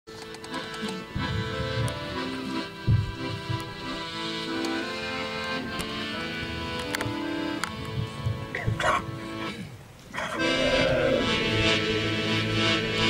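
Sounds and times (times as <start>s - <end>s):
low thump on microphone: 2.8s - 3.7s, 7.9s - 9.0s
men's choir singing: 10.2s - 13.0s.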